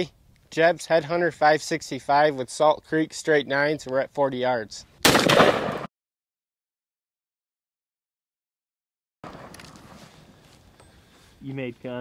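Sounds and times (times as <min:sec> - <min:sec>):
outdoor microphone noise: 0:00.0 - 0:05.9, 0:09.2 - 0:12.0.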